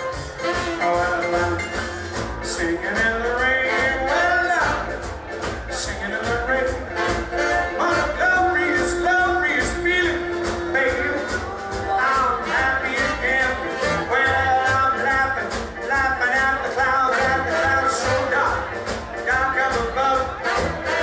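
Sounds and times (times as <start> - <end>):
swing band playing: 0.0 - 21.0.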